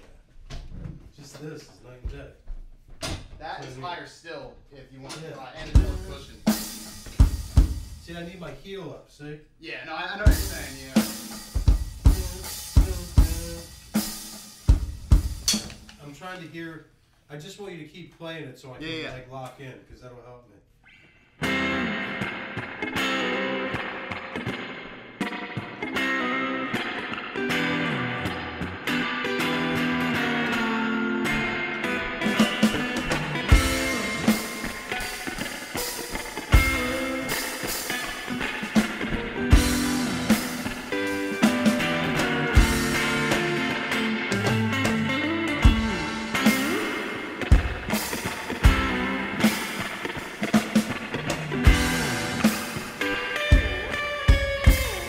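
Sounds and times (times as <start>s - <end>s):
drum kit with cymbals: 5.5s - 8.7s, 10.2s - 16.2s, 31.3s - 55.0s
guitar strumming chords: 10.3s - 13.7s, 21.4s - 55.0s.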